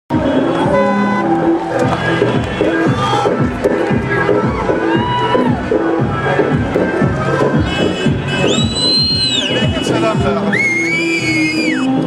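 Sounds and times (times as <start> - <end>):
car horns honking: 0.1 - 3.8, 7.5 - 10.1.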